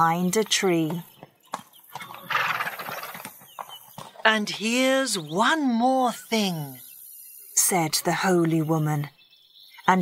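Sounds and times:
horse call: 2.0s - 3.3s.

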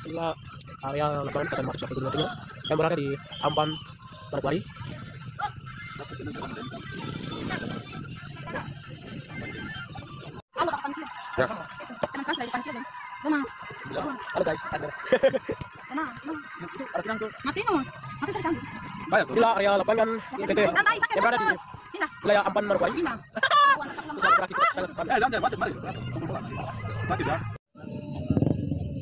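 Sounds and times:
people talking and calling out: 0.0s - 29.0s.

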